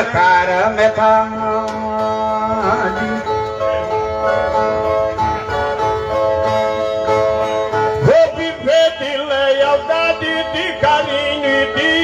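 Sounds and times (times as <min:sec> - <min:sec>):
steel-string violas plucking: 0:01.3 - 0:08.2.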